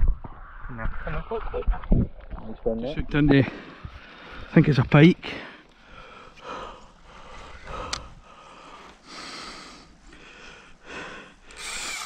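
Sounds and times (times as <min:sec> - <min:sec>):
man breathing: 0:03.5 - 0:04.5, 0:05.3 - 0:12.0.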